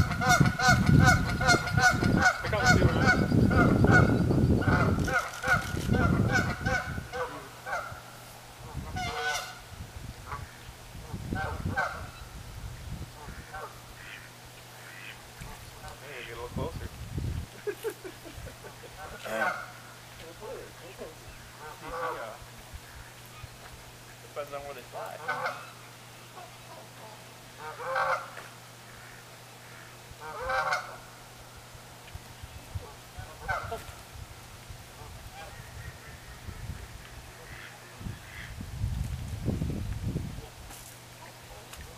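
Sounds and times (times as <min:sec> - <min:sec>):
geese honking: 0:00.0 - 0:12.3, 0:13.2 - 0:16.7, 0:18.6 - 0:31.4, 0:32.7 - 0:34.0, 0:34.9 - 0:38.6
wind rumble on microphone: 0:00.0 - 0:14.1, 0:15.4 - 0:19.2, 0:31.7 - 0:40.8.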